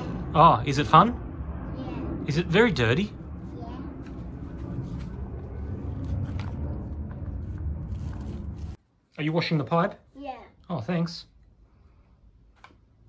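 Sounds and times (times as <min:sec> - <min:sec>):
steady low rumble: 0:00.0 - 0:08.8.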